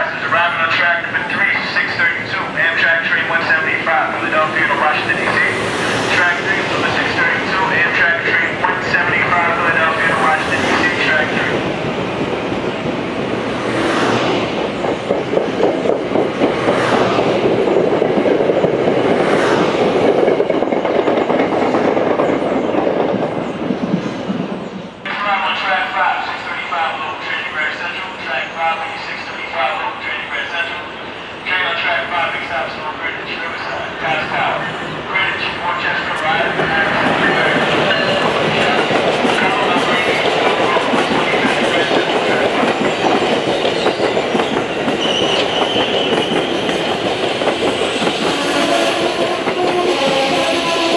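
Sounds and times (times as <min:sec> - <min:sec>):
public-address announcement: 0:00.0 - 0:11.7, 0:25.0 - 0:43.5
commuter train passing: 0:00.0 - 0:50.9.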